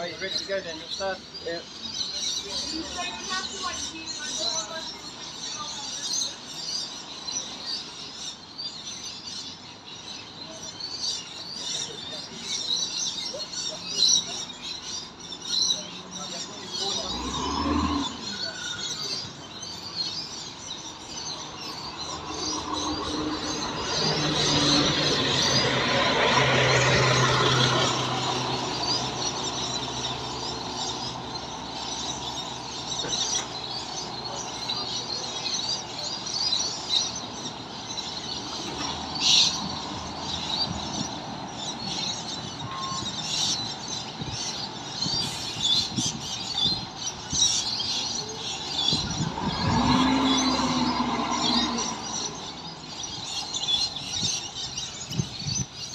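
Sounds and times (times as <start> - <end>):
birds chirping: 0.0 - 55.9
vehicle passing: 16.3 - 19.2, 21.4 - 43.3, 48.4 - 53.5
bus diesel engine pulling away: 22.1 - 34.9, 48.8 - 52.8.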